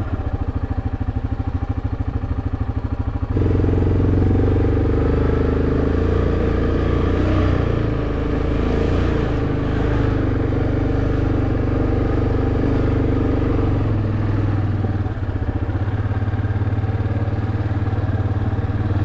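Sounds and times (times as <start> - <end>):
atv engine running: 0.0 - 19.0.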